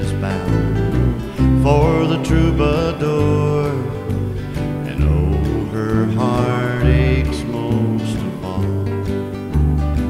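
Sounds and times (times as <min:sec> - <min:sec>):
country song on acoustic guitar: 0:00.0 - 0:10.0
sliding melodic line: 0:00.0 - 0:10.0.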